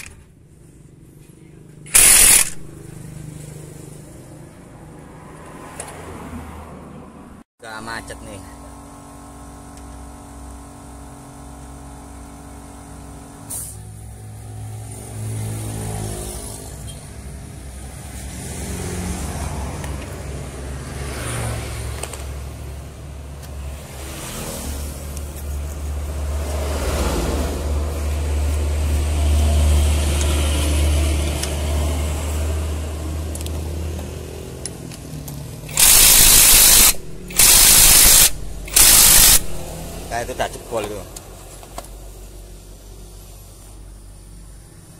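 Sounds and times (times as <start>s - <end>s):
mechanical working noise: 1.9s - 3.0s, 33.3s - 42.0s
compressed air hiss: 13.5s - 13.9s, 35.7s - 39.7s.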